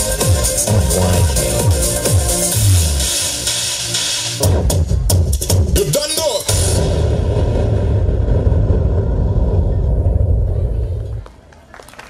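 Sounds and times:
low bass rumble from loudspeakers: 0:00.0 - 0:03.5, 0:04.4 - 0:11.5.

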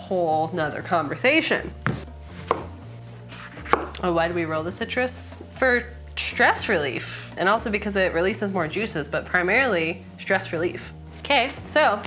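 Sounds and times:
knife cutting citrus fruit: 0:01.8 - 0:04.0
knife blade knocking on wood: 0:03.6 - 0:04.0.

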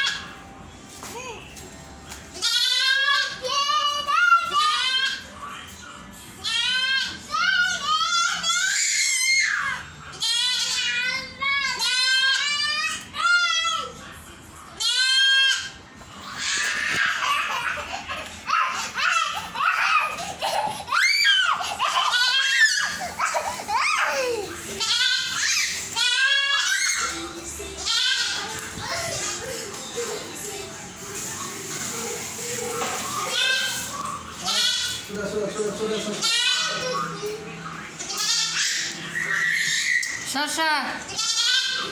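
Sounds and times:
goat bleating: 0:02.4 - 0:03.4, 0:10.2 - 0:10.9, 0:14.8 - 0:15.6, 0:22.1 - 0:22.5, 0:24.8 - 0:27.1, 0:27.8 - 0:28.6, 0:34.4 - 0:35.1, 0:36.1 - 0:36.8, 0:38.0 - 0:39.5, 0:41.1 - 0:41.9.

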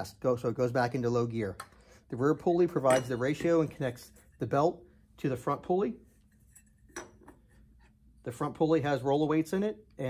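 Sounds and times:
light metal clink: 0:02.8 - 0:03.5.

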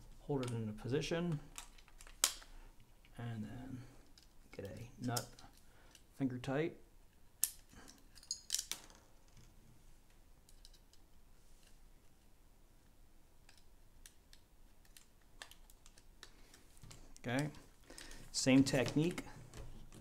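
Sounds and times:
plastic parts clicking: 0:01.3 - 0:03.2, 0:13.4 - 0:20.0.

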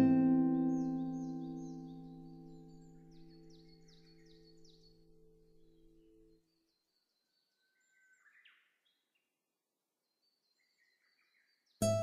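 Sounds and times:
plucked guitar note: 0:00.0 - 0:02.8
birds chirping: 0:00.0 - 0:09.2.

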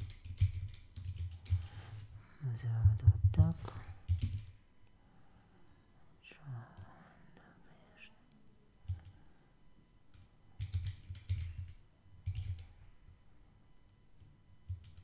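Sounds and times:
typing on a keyboard: 0:00.0 - 0:01.7, 0:03.8 - 0:04.6, 0:08.9 - 0:09.1, 0:10.1 - 0:12.7, 0:14.7 - 0:15.0.

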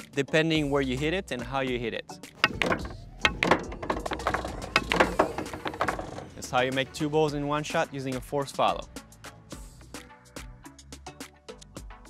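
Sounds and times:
background music with steady beat: 0:00.0 - 0:12.0
balls dropping into pockets: 0:02.4 - 0:06.4
cue striking ball: 0:02.4 - 0:06.4
pool balls clacking: 0:02.4 - 0:06.8.

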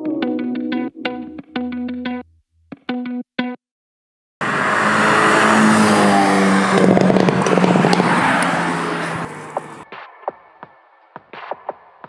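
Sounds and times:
car engine revving hard: 0:04.4 - 0:09.8
exhaust crackles: 0:04.4 - 0:09.8.

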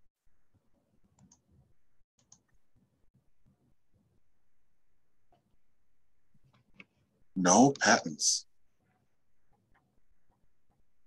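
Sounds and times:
computer mouse clicks: 0:01.1 - 0:01.6, 0:02.2 - 0:02.6.

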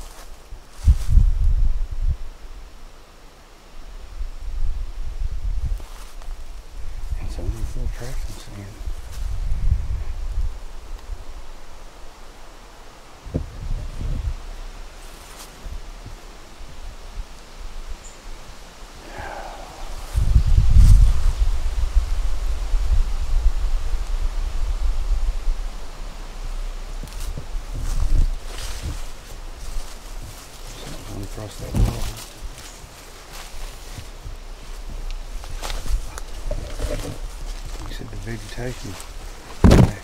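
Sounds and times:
wind gusting over microphone: 0:00.0 - 0:02.6, 0:04.1 - 0:12.0, 0:13.2 - 0:15.0, 0:18.8 - 0:40.0
forest leaves rustling: 0:00.0 - 0:40.0.

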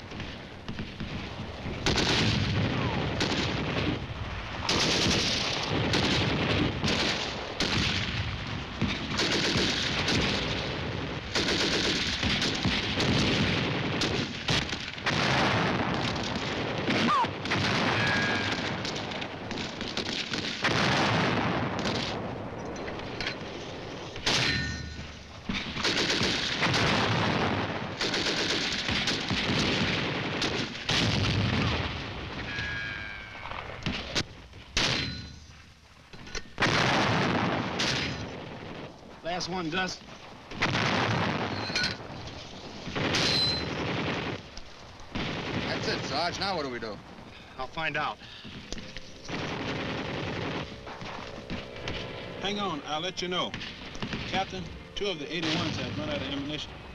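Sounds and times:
gunfire volleys and bursts: 0:00.0 - 0:56.9.

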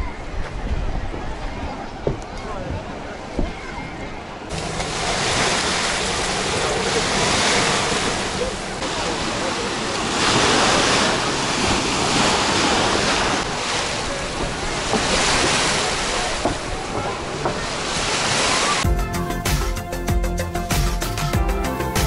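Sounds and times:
small waves breaking on sand: 0:04.5 - 0:18.8.

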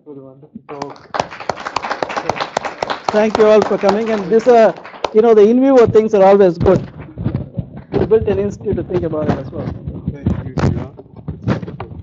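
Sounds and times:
audience applauding: 0:00.7 - 0:08.1.

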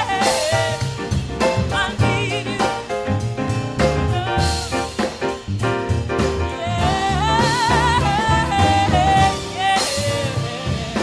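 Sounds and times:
woman singing: 0:00.0 - 0:03.2, 0:03.8 - 0:05.0, 0:06.4 - 0:11.0
jazz band playing: 0:00.0 - 0:11.0.

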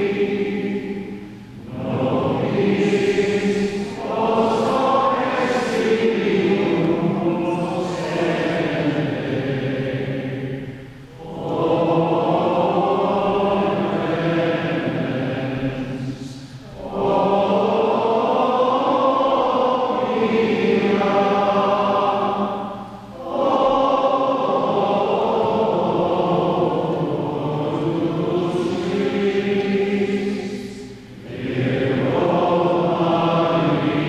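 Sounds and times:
group chanting liturgical text: 0:00.0 - 0:34.0.

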